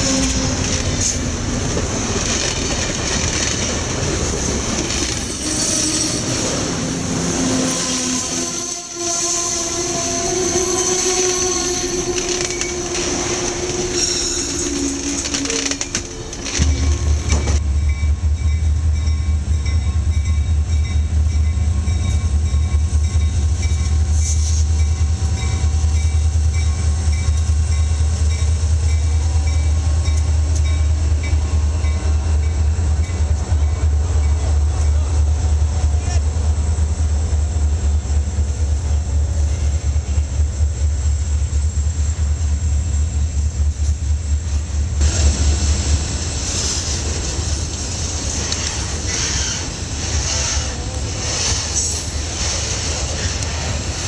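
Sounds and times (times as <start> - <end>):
diesel locomotive rumbling: 0.0 - 54.0
high wheel squeal: 4.2 - 17.6, 48.4 - 52.5.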